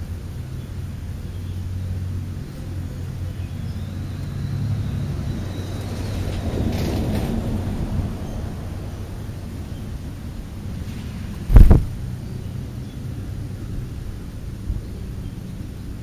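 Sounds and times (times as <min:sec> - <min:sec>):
steady low rumble: 0:00.0 - 0:16.0.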